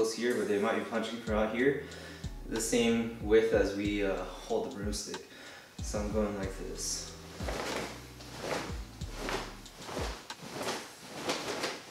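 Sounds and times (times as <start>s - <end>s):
fabric swishing: 6.8s - 11.9s
low thumps: 7.3s - 10.4s.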